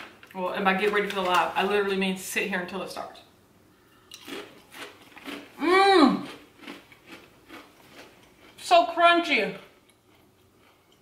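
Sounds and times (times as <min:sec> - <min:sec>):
chewing crunches of cheese crisp: 0:04.1 - 0:05.6, 0:06.2 - 0:08.7, 0:09.7 - 0:11.0
person humming mmm: 0:05.6 - 0:06.4.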